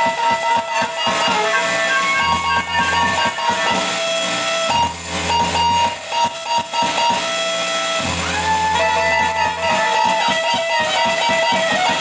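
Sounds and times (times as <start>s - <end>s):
electronic noise music: 0.0s - 12.0s
reed instrument held tones: 0.0s - 12.0s.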